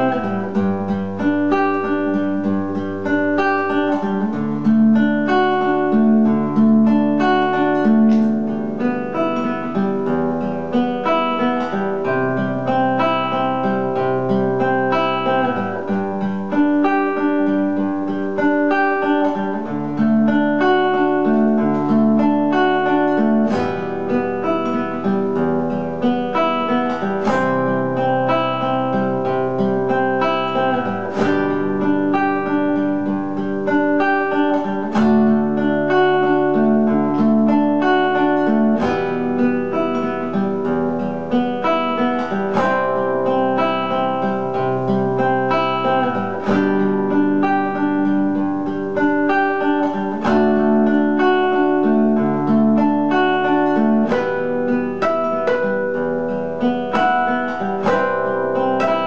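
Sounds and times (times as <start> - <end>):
classical guitar fingerpicked: 0.0 - 59.0.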